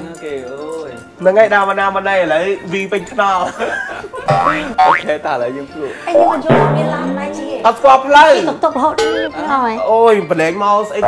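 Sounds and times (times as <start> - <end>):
boing-like upward glides: 4.3 - 5.1, 6.1 - 8.0
wobbling tone: 6.1 - 8.0.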